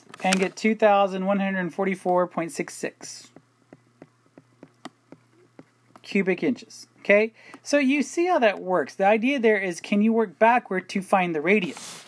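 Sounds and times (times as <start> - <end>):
low steady hum: 0.0 - 11.7.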